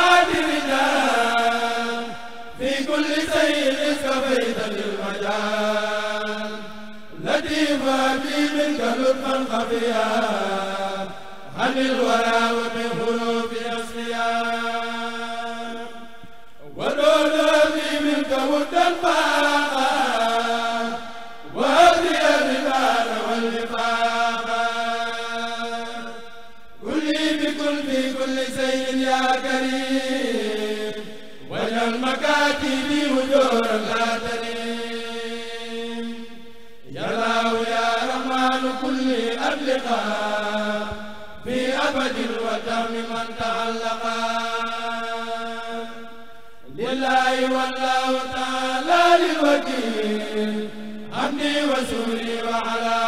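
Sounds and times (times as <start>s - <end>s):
men chanting through microphone: 0.0s - 53.0s.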